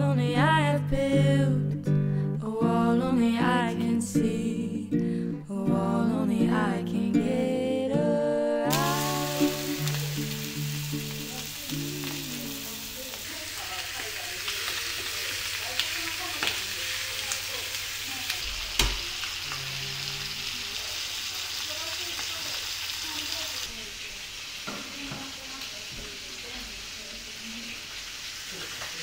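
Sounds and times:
music: 0.0 - 13.2
chicken sizzling in a skillet: 8.7 - 29.0.

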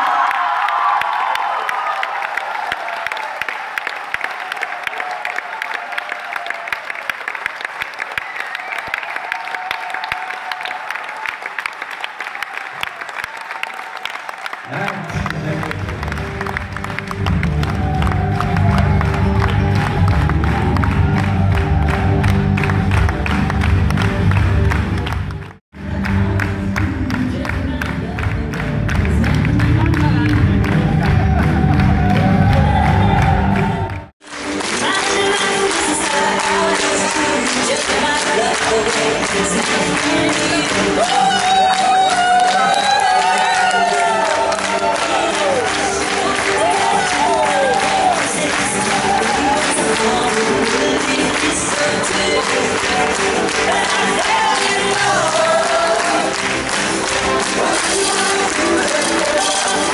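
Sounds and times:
audience applauding: 0.0 - 59.9.

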